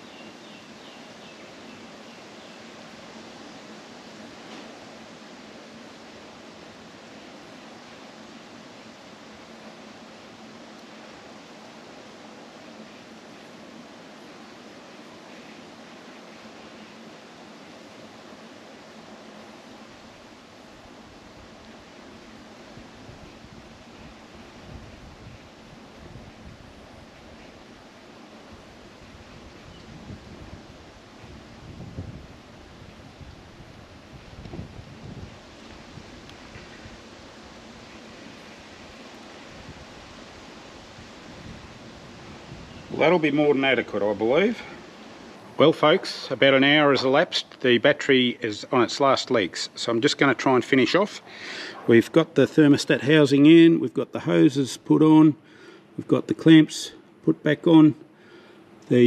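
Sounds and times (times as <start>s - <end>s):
steady background hiss: 0.0s - 59.0s
wind rumbling on microphone: 20.7s - 47.2s.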